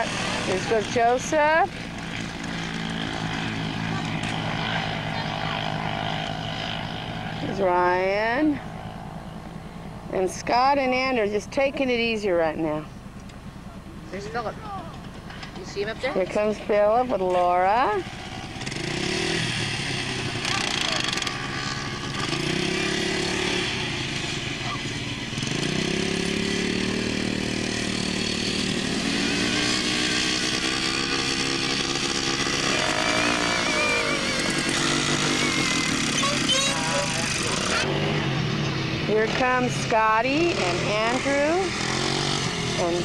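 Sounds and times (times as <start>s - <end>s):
quad bike engine: 0.0s - 43.0s.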